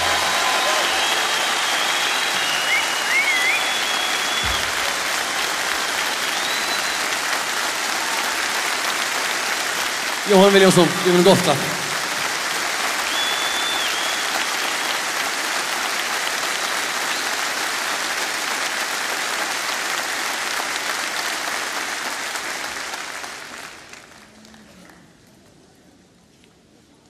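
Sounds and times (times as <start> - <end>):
whistle from crowd: 0.0 - 7.2, 13.0 - 15.0, 16.5 - 17.5
audience applause: 0.0 - 24.9.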